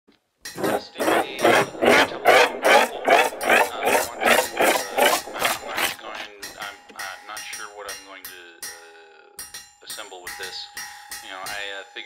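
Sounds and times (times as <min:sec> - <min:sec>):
rhythmic rasping electronic loop: 0:00.6 - 0:07.0.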